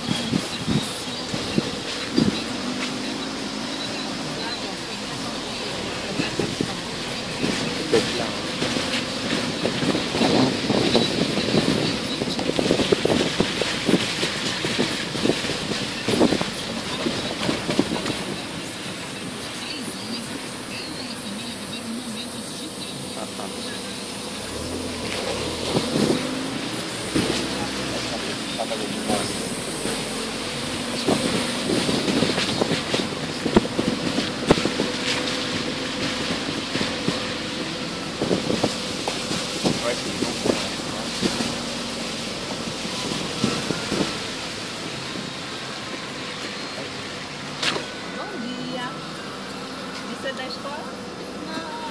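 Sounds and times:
wind noise on microphone: 0.0s - 2.9s, 6.0s - 19.6s, 24.4s - 46.4s
vehicle body rattling: 0.0s - 21.8s, 22.8s - 48.4s
road noise: 0.0s - 51.9s.

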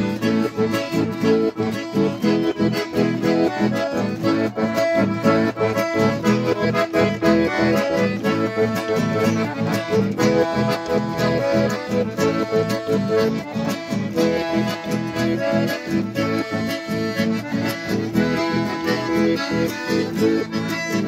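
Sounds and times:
acoustic guitars strummed: 0.0s - 21.0s
button accordions playing melody: 0.0s - 21.0s.

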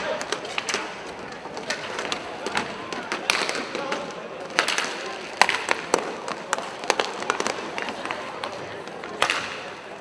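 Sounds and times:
hockey sticks and puck clacking: 0.0s - 10.0s
murmur of voices: 0.0s - 10.0s.

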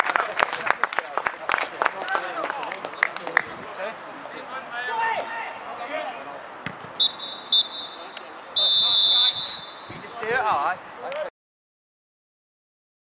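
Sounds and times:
referee's whistle blasts: 7.0s - 9.9s.

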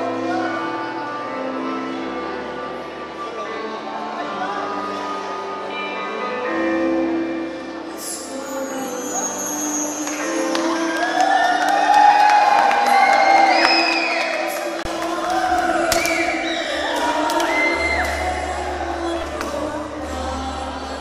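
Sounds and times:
woman singing into a microphone: 7.9s - 13.4s, 14.4s - 21.0s.

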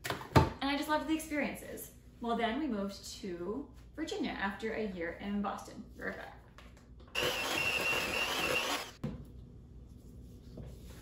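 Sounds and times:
electric hand mixer whining: 7.2s - 9.0s.

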